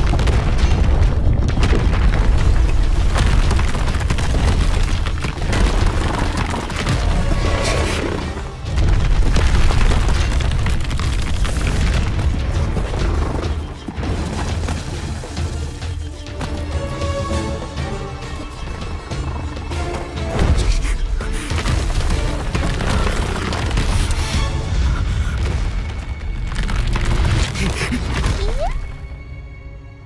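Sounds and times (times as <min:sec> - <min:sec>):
deep booms and crashing impacts: 0:00.0 - 0:07.6
dramatic background music: 0:00.0 - 0:30.0.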